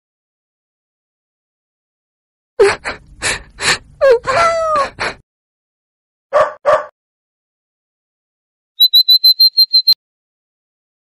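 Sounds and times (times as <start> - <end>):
cartoon dog barks: 6.3 - 7.0
high chirps: 8.8 - 10.0.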